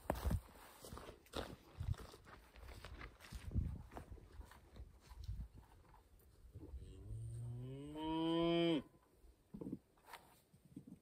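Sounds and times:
cow mooing: 7.0 - 8.9.

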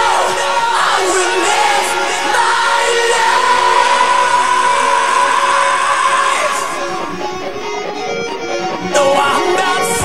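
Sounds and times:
sustained guitar and synth chord: 0.0 - 10.0.

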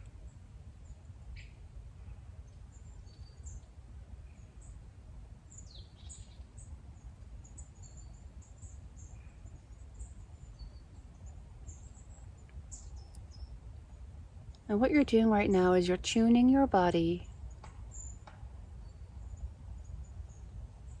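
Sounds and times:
low steady rumble: 0.0 - 17.6
small birds chirping: 0.0 - 21.0.

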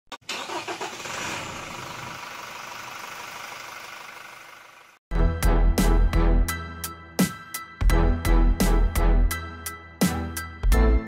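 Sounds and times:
car engine starting and running: 0.1 - 5.0.

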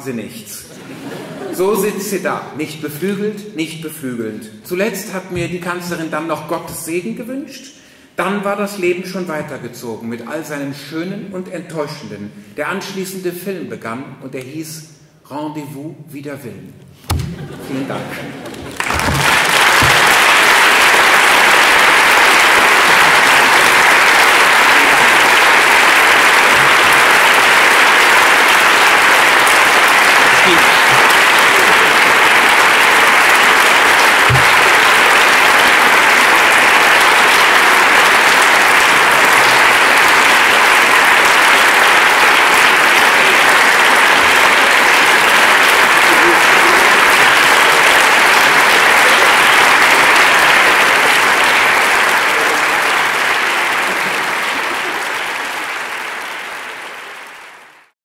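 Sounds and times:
audience applauding: 17.6 - 58.0.

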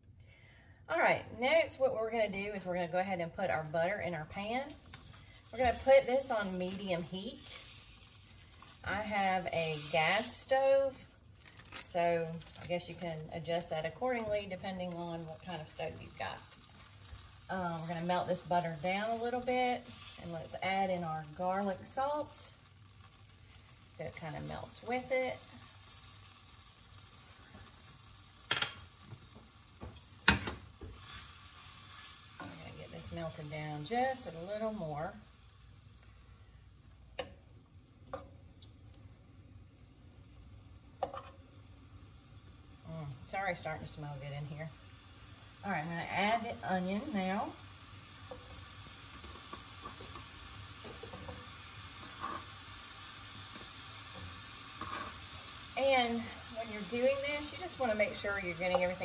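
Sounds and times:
butter sizzling in a skillet: 3.8 - 59.0.

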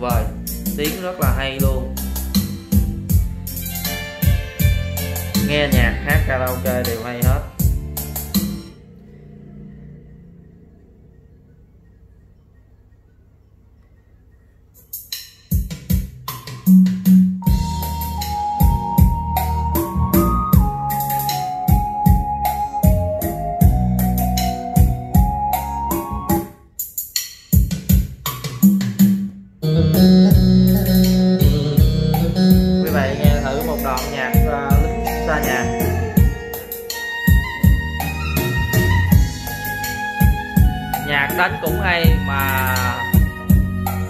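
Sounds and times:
band music over speakers: 0.0 - 8.8, 14.8 - 44.0.

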